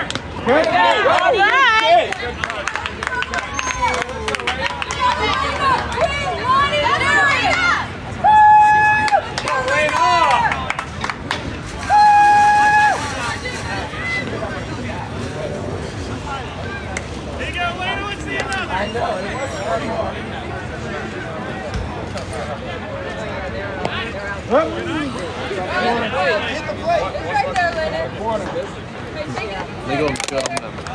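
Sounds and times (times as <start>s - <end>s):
people calling out and chattering: 0.0s - 30.9s.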